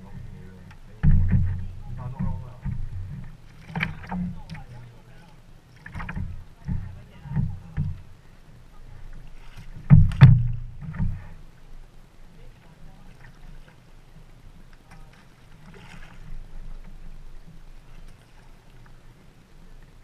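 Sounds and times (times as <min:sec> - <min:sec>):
water lapping against kayak hulls: 0:00.0 - 0:20.0.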